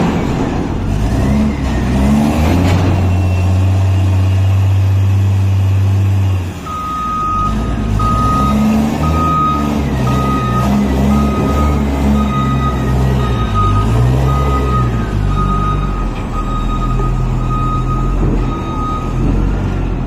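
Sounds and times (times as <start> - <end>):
diesel engine running: 0.0 - 20.0
reversing alarm beeping: 6.2 - 19.4.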